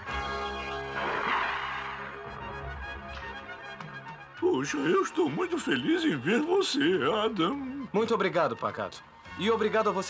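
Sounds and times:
orchestral background music: 0.0 - 10.0
cartoon water splash: 1.0 - 2.3.

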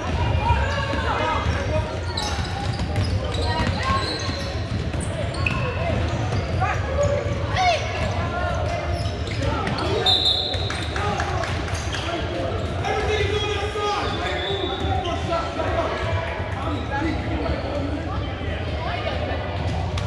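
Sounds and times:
sneaker squeaks on hardwood: 0.0 - 7.3, 8.0 - 10.7
echoing voices in a hall: 0.0 - 20.0.

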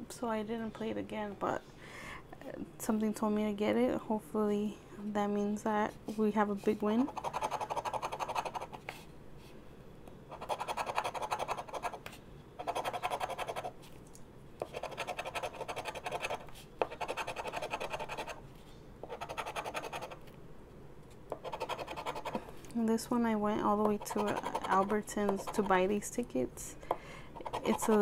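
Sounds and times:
scratching lottery ticket: 10.4 - 12.0, 12.6 - 13.7, 14.6 - 18.4, 19.0 - 20.2, 21.4 - 22.4, 23.9 - 25.8, 27.4 - 28.0.

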